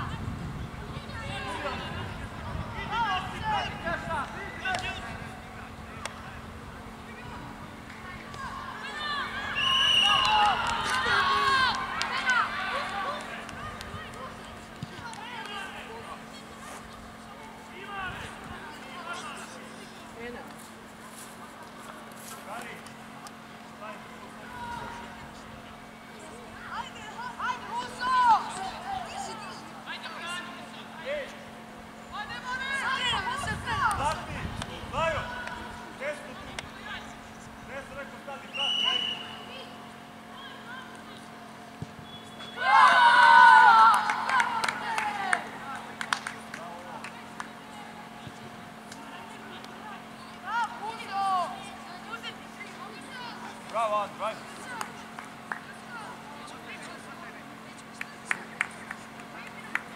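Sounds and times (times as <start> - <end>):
people shouting and calling out: 1.0 - 6.2, 7.0 - 19.5, 23.8 - 25.3, 26.4 - 31.4, 32.1 - 37.2, 42.4 - 46.0
children shouting: 8.5 - 13.2, 42.6 - 45.4.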